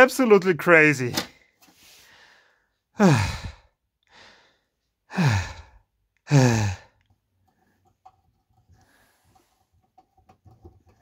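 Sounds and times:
faint breathing: 1.7 - 7.9, 8.7 - 9.7
man sighing: 2.9 - 7.1.

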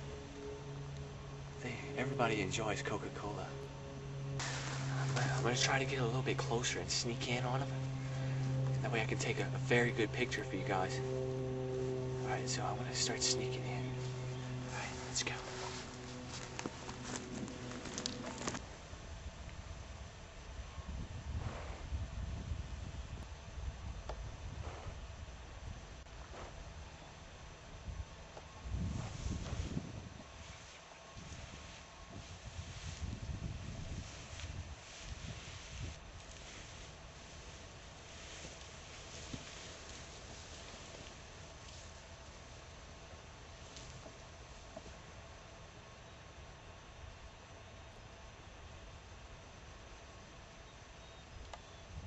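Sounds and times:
faint footsteps: 0.0 - 18.7
low rumbling on microphone: 0.0 - 26.7, 31.2 - 41.4.

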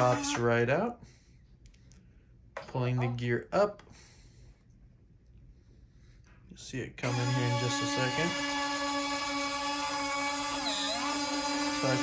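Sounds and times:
landing gear motor whining: 9.2 - 12.0.

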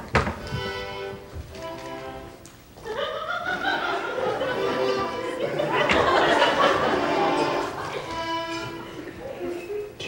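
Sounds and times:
accordion chords: 0.3 - 2.4, 3.8 - 10.0.

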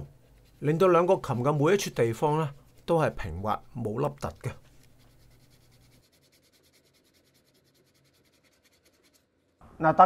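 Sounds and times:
sandpaper rubbing on wood: 4.0 - 9.2.

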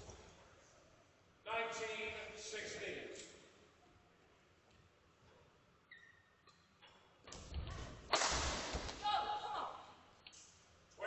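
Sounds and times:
footfalls thudding on court: 7.4 - 9.0
racket hitting shuttlecock: 8.1 - 9.1.

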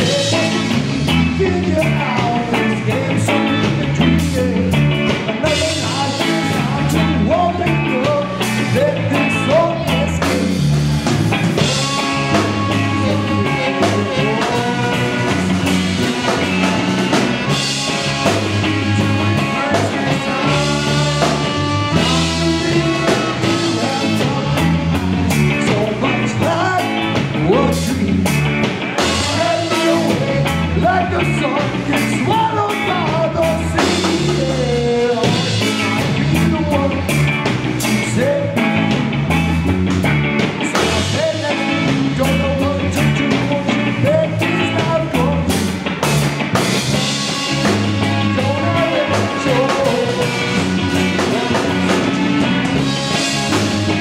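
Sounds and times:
person singing: 0.0 - 10.8, 11.4 - 39.0, 40.6 - 45.7, 47.0 - 54.0
punk band with horns playing: 0.0 - 54.0.

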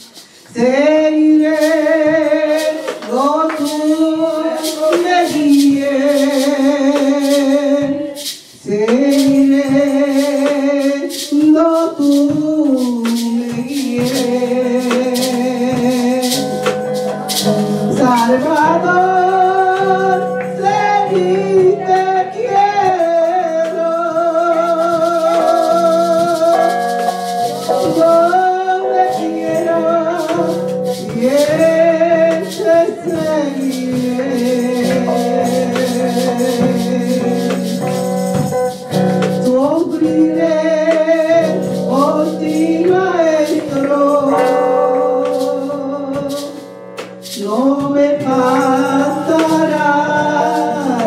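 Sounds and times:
maracas shaken: 0.0 - 51.0
woman singing into a microphone: 0.0 - 51.0.

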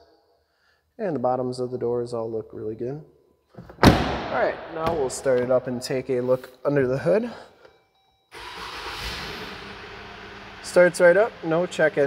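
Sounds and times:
car engine starting: 8.3 - 12.0.

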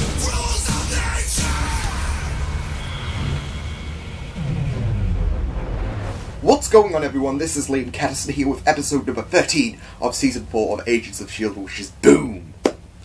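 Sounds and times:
dramatic intro music: 0.0 - 7.1.

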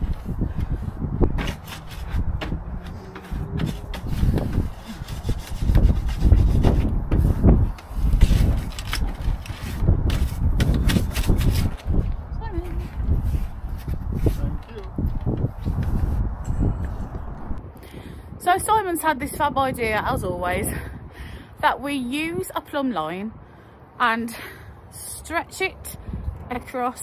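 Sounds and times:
wind buffeting microphone: 0.0 - 24.0, 25.8 - 27.0
rubbing on wood: 0.1 - 11.7.

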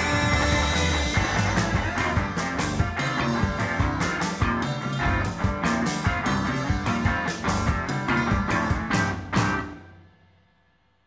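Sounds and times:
steady drum beat: 0.0 - 9.8
rock music with guitar: 0.0 - 10.2.

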